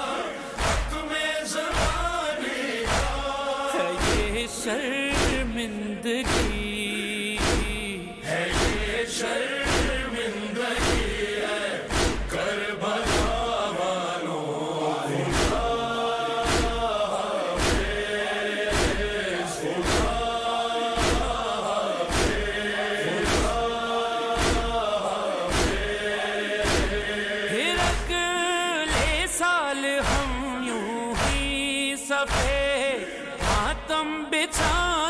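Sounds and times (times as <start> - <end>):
voices chanting a lament: 0.0 - 35.0
hands slapping chests: 0.6 - 2.2, 2.8 - 3.3, 4.0 - 4.4, 5.1 - 5.5, 6.2 - 6.7, 7.4 - 7.9, 8.5 - 8.8, 9.6 - 10.0, 10.8 - 11.1, 11.9 - 12.4, 13.0 - 13.5, 15.3 - 15.7, 16.4 - 16.9, 17.6 - 18.0, 18.7 - 19.2, 19.8 - 20.2, 21.0 - 21.4, 22.1 - 22.5, 23.2 - 23.6, 24.4 - 24.8, 25.5 - 25.9, 26.6 - 27.0, 31.2 - 31.5, 32.3 - 32.7.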